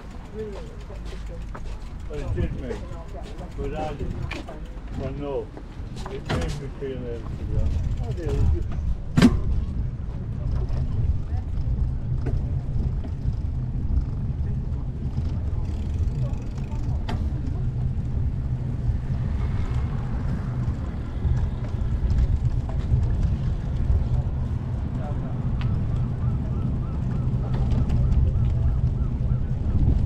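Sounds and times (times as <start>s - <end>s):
faint voices: 0.0s - 30.0s
wind rumble on microphone: 0.0s - 30.0s.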